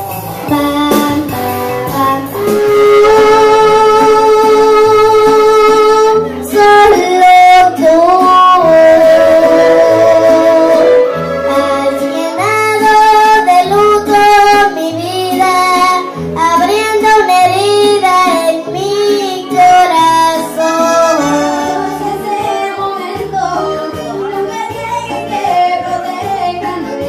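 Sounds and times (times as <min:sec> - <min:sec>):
karaoke backing track: 0:00.0 - 0:27.0
girl singing into microphone: 0:00.4 - 0:27.0.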